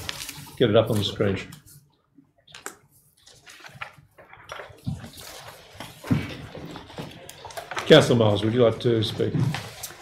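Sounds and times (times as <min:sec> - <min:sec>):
papers rustling: 0:00.0 - 0:01.8, 0:02.5 - 0:10.0.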